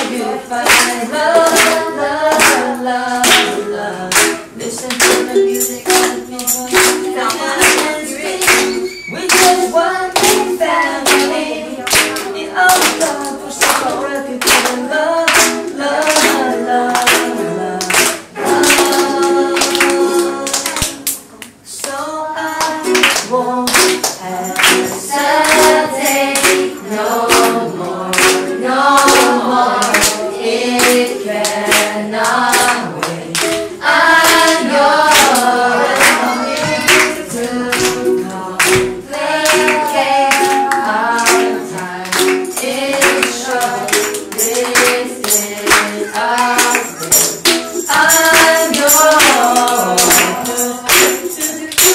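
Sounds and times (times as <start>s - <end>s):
group singing: 0.0s - 51.9s
people clapping: 0.0s - 51.9s
ukulele strumming: 0.0s - 51.9s.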